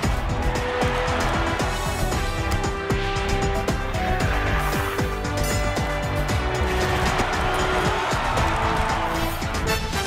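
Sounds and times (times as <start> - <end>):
news theme music with driving beat: 0.0 - 10.0.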